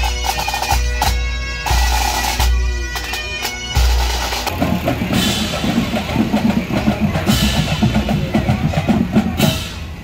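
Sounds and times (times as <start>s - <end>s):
marching drumline playing: 0.0s - 10.0s.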